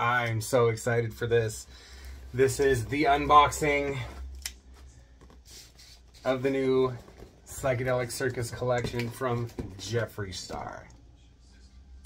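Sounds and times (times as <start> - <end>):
low steady hum: 0.0 - 12.0
cardboard box rustling: 6.1 - 10.7.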